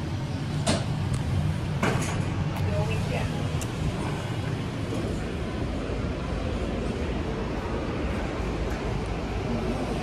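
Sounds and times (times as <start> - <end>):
elevator humming: 0.0 - 10.0.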